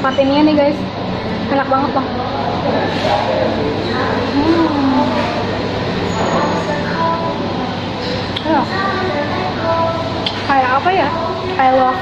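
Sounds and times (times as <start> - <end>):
faint indistinct voices: 0.0 - 12.0
restaurant background hum: 0.0 - 12.0.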